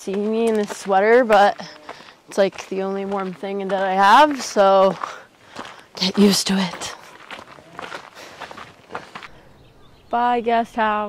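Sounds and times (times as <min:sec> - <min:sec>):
footsteps on gravel: 0:00.0 - 0:09.6.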